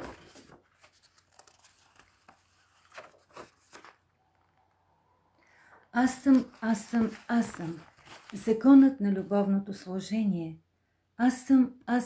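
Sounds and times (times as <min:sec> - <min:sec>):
faint rustling: 0:05.5 - 0:08.8.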